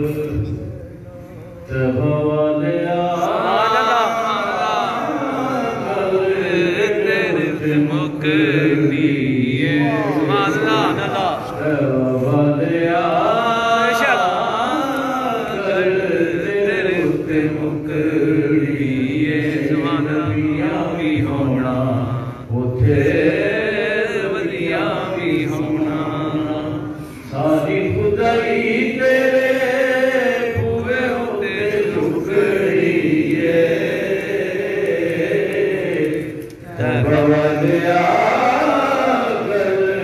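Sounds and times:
man chanting into microphone: 0:00.0 - 0:40.0.

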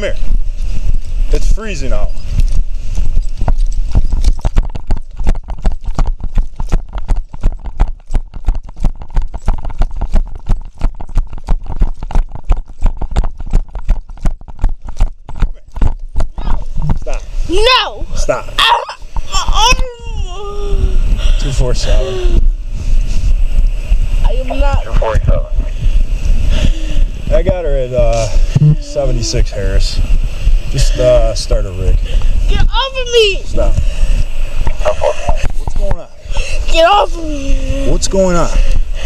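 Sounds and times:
running footsteps on snow: 0:02.2 - 0:17.2
high voice crying out: 0:18.6 - 0:21.1, 0:22.0 - 0:22.5.

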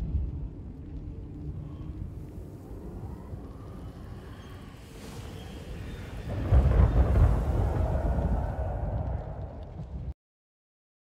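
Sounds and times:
gritty rush of noise: 0:00.0 - 0:10.1
low rumble: 0:00.0 - 0:10.2.

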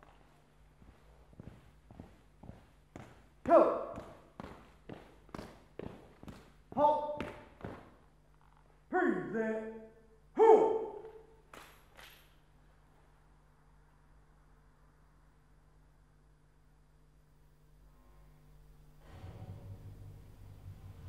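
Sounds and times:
marching footsteps: 0:00.0 - 0:08.4
drill commands called out: 0:03.4 - 0:04.3, 0:06.7 - 0:07.6.

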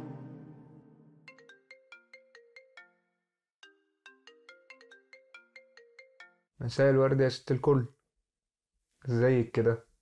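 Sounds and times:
faint phone ringtone melody: 0:01.3 - 0:06.6.

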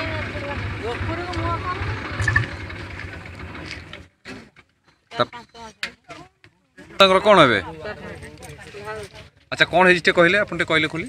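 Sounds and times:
engine pulsing rumble: 0:00.0 - 0:04.0.

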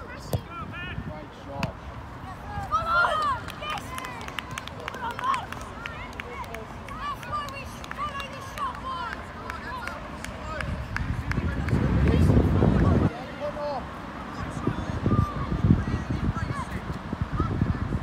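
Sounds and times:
players and spectators shouting: 0:02.3 - 0:10.8
wind rumbling on microphone: 0:10.4 - 0:13.3, 0:14.4 - 0:18.0.

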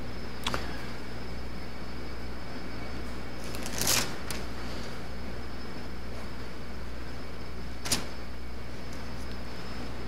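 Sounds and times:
thin paper pages turning: 0:03.4 - 0:04.4.

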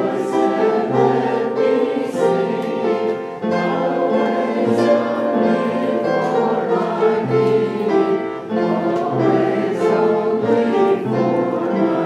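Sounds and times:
congregation singing a hymn: 0:00.0 - 0:12.0
instrumental accompaniment: 0:00.0 - 0:12.0.

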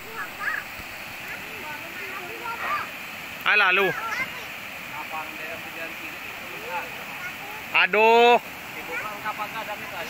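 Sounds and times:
faint voices talking: 0:00.0 - 0:10.0
flooded river rushing: 0:00.0 - 0:10.0.

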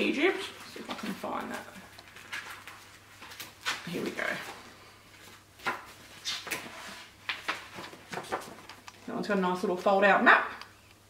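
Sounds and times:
paper rustling and crinkling: 0:00.5 - 0:08.8.

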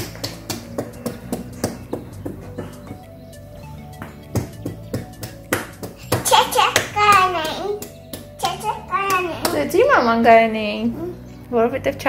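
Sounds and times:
hands slapping windowsill: 0:00.0 - 0:03.2, 0:03.8 - 0:09.8
background music: 0:00.0 - 0:12.0.

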